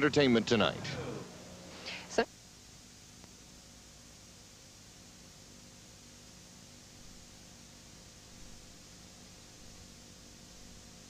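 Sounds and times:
low hum: 0.0 - 4.6
videotape hiss: 0.0 - 11.0.

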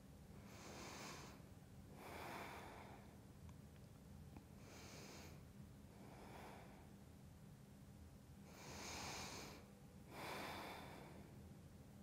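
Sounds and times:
woman breathing: 0.4 - 3.3, 4.6 - 7.0, 8.4 - 11.5.

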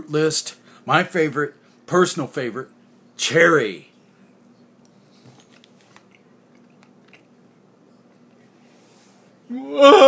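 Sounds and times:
faint chewing clicks: 4.8 - 8.4.

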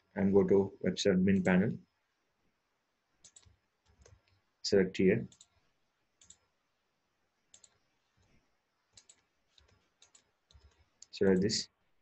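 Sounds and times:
computer mouse clicks: 3.2 - 4.4, 5.3 - 5.6, 6.2 - 6.4, 7.5 - 8.3, 8.9 - 11.5.

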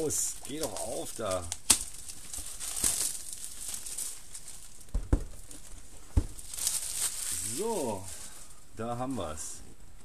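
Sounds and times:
plastic shrink wrap crinkling: 0.0 - 9.6
cardboard box knocks: 4.9 - 5.4, 6.1 - 6.4.

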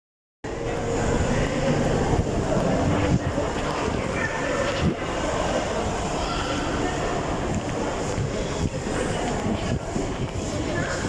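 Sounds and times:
distant indistinct voices: 0.5 - 11.0.

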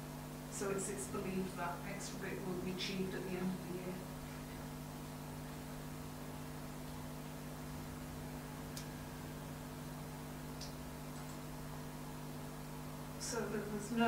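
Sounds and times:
electrical hum: 0.0 - 14.0.

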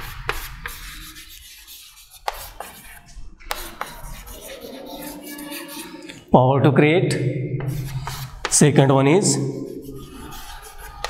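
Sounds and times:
chalk tapping on chalkboard: 0.0 - 6.2, 7.6 - 8.8, 9.5 - 11.0
chalk scratching on chalkboard: 0.0 - 6.3, 7.6 - 8.9, 9.5 - 11.0.

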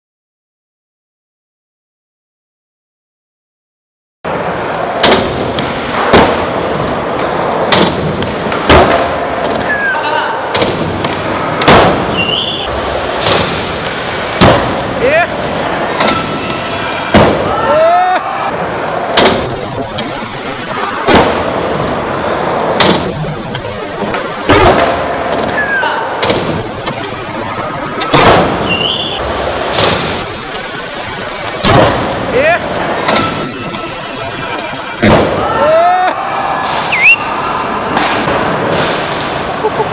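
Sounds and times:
skateboard wheels rolling on concrete: 4.3 - 17.1.

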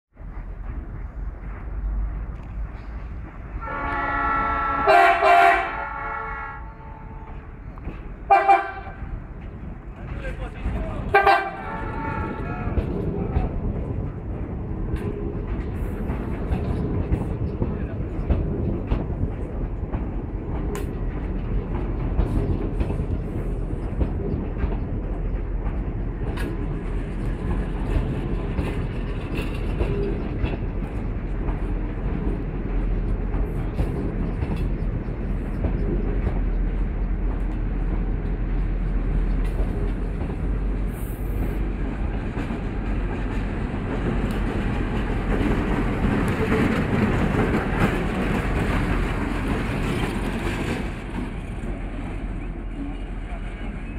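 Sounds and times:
diesel locomotive: 0.1 - 53.9
train wheels rumbling on rails: 0.1 - 53.9.

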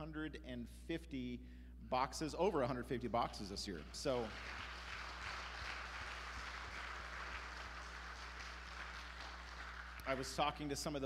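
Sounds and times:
congregation applauding: 3.6 - 11.0.

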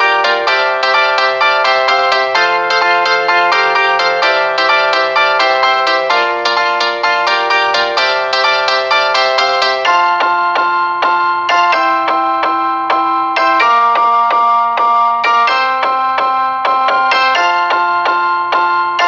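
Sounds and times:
bright ringtone-like melody: 0.0 - 19.0.

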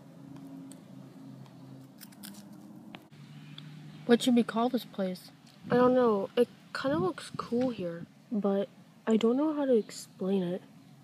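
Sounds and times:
dry leaves and twigs crackling: 1.8 - 2.8.

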